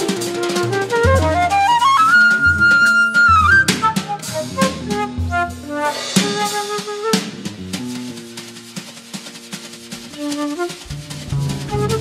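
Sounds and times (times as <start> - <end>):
flute playing: 0.0 - 7.4, 10.1 - 12.0
drums: 0.0 - 12.0
upright bass notes: 10.9 - 12.0.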